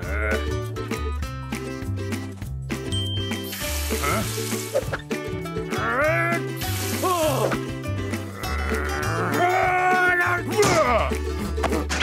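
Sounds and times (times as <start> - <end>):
cartoon character groaning: 0.0 - 0.5, 8.2 - 9.9
background music with bass line: 0.0 - 12.0.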